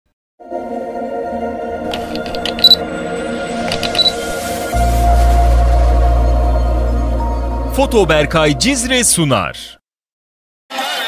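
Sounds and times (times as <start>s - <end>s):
ambient synth music: 0.4s - 8.4s
camera clicks: 1.9s - 2.8s, 3.6s - 4.4s.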